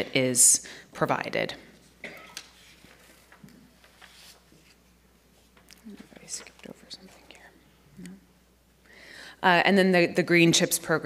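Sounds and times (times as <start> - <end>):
person whispering: 5.8 - 8.2.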